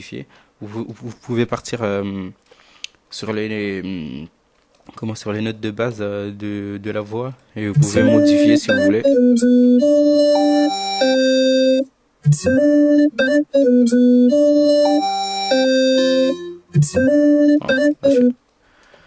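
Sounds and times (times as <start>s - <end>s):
vocoded robotic voice: 7.8s - 9.2s, 16.2s - 18.3s.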